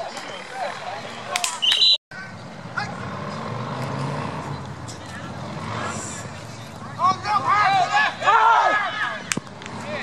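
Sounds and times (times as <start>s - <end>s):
low outdoor rumble: 2.1s - 10.0s.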